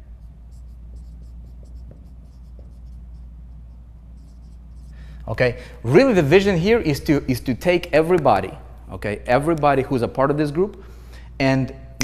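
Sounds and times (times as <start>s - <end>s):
marker squeaking on whiteboard: 0.0s - 5.0s.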